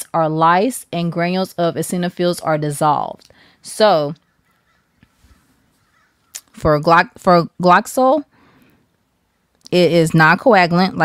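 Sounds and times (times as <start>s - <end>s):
woman speaking: 0.0s - 4.2s, 6.4s - 8.3s, 9.7s - 11.0s.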